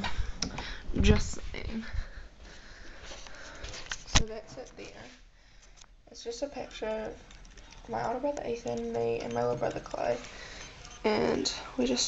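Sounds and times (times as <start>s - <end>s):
breathing: 0.0s - 0.9s, 1.8s - 4.0s, 5.2s - 6.0s, 7.3s - 7.9s, 10.2s - 11.0s.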